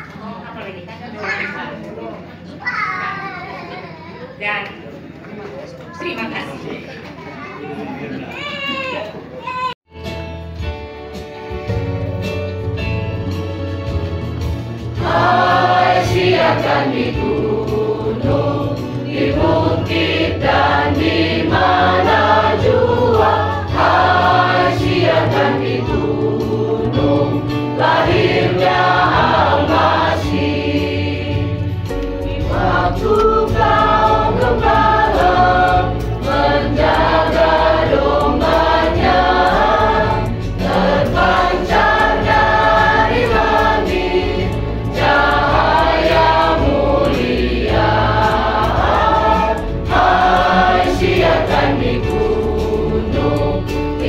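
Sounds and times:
choir singing a hymn: 13.6s - 54.0s.

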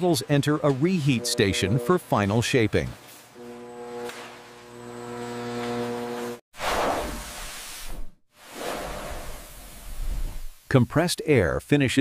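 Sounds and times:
machine hum at several pitches: 0.9s - 2.1s, 3.4s - 6.4s
hiss: 6.6s - 10.7s.

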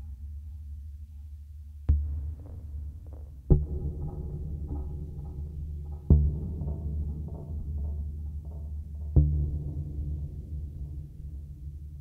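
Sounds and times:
heavy low drum-like pulse: 1.9s - 12.0s.

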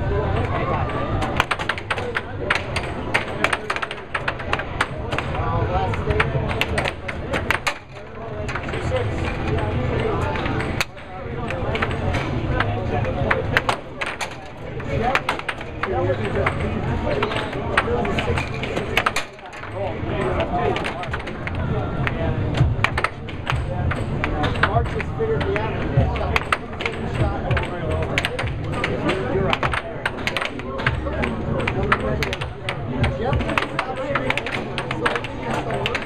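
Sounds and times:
air hockey puck clacking: 0.4s - 36.0s.

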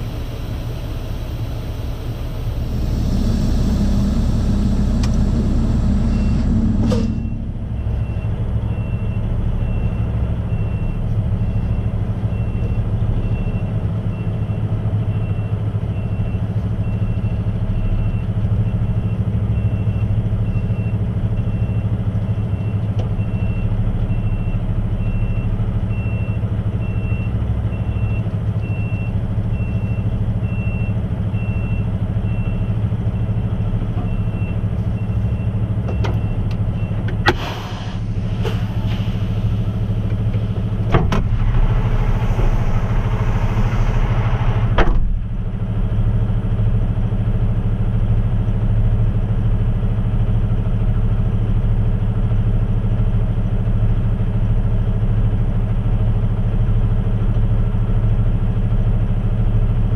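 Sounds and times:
diesel truck engine idling: 0.0s - 59.9s
high electronic beep: 2.6s - 9.8s
clunk: 35.9s - 45.2s
hissing noise: 37.3s - 44.8s.

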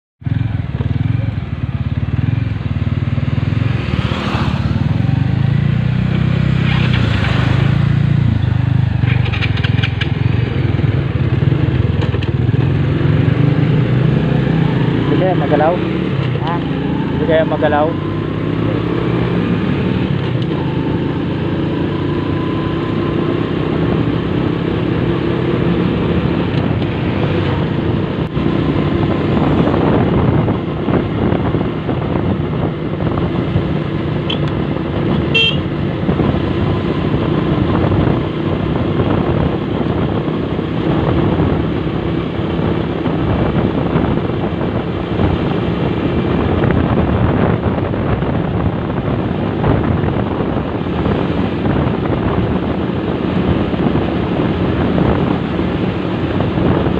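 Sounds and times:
motorcycle engine running: 0.2s - 56.9s.

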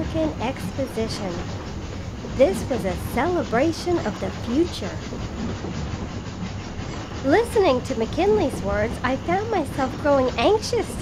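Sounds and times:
train rumbling inside carriage: 0.0s - 11.0s.

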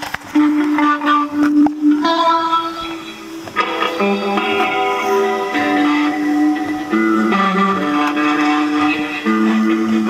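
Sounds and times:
electric guitar chords: 0.0s - 10.0s.

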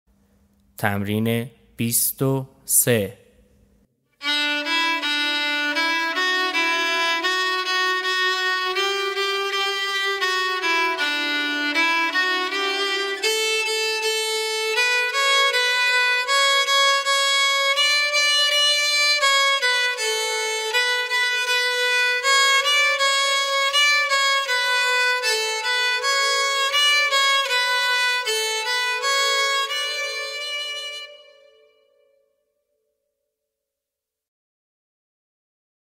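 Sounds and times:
solo violin playing: 4.2s - 32.2s.

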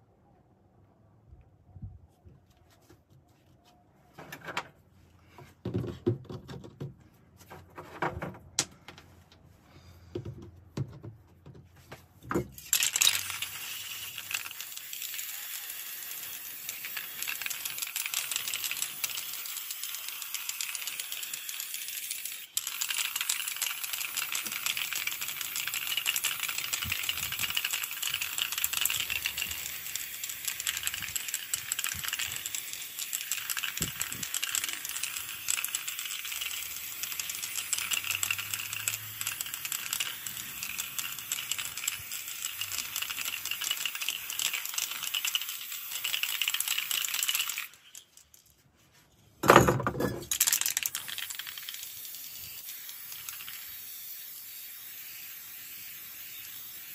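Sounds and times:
spray paint can hissing: 12.5s - 48.3s, 50.3s - 56.9s
spray can mixing ball rattle: 12.5s - 48.6s, 49.5s - 56.9s.

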